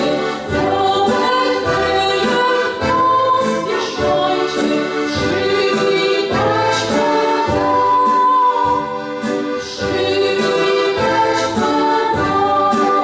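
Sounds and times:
woman singing carol: 0.0 - 8.9, 9.6 - 13.0
electronic keyboard accompaniment: 0.0 - 13.0.

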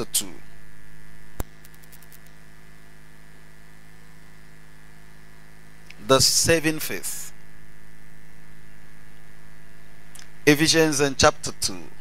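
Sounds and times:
electrical mains hum: 0.0 - 12.0
sharp click: 1.4 - 2.4.

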